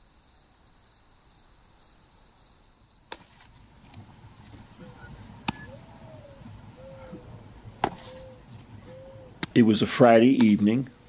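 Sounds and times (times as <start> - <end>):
insects trilling: 0.0 - 11.0
soft low calls: 3.6 - 9.9.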